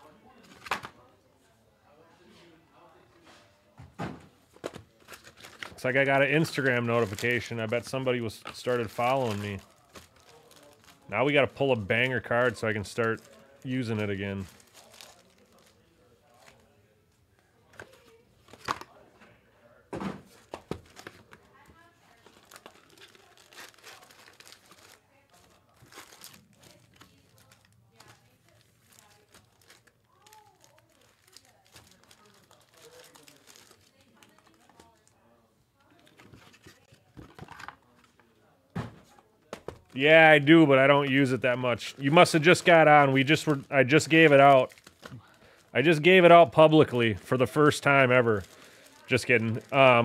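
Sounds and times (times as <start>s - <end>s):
foil wrappers crinkling and tearing: 4.9s - 16.8s, 20.4s - 35.2s, 39.9s - 50.0s.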